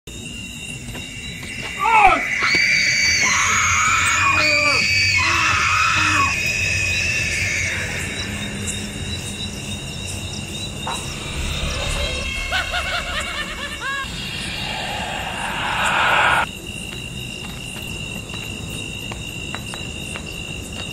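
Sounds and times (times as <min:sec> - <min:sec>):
eerie music: 0:00.4 - 0:16.5
wailing scream-like voices: 0:01.7 - 0:09.8, 0:10.7 - 0:16.5.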